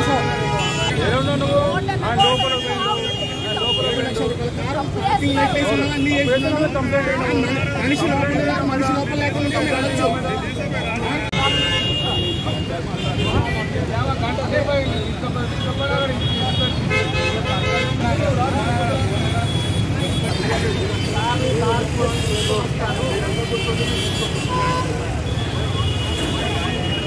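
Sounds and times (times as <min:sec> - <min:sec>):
vehicle horns honking: 0:00.0 - 0:04.4, 0:09.3 - 0:13.7, 0:14.8 - 0:18.2, 0:19.0 - 0:27.0
crowd talking: 0:00.0 - 0:27.0
engines rumbling: 0:00.0 - 0:27.0.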